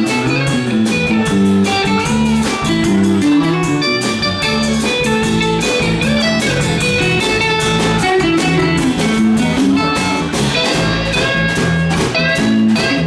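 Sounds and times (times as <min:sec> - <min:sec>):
drum kit: 0:00.0 - 0:13.0
electric bass: 0:00.0 - 0:13.0
electric guitar: 0:00.0 - 0:13.0.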